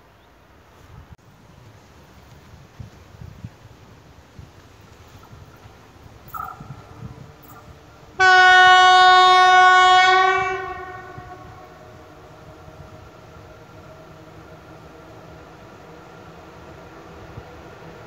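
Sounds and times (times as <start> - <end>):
faint train hum: 0.0 - 18.0
electric locomotive horn blast: 6.3 - 16.2.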